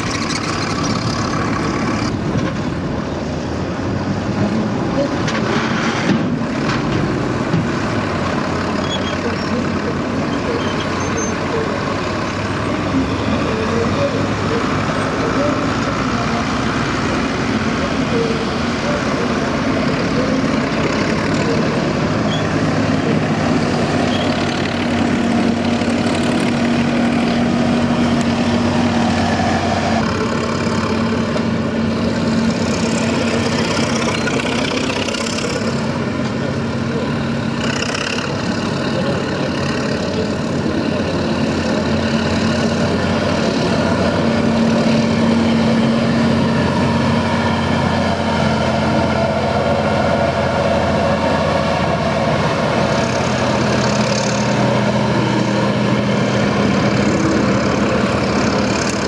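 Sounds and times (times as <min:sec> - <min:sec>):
larger truck engine: 0:00.0 - 0:59.0
vehicle engines driving past: 0:00.0 - 0:59.0.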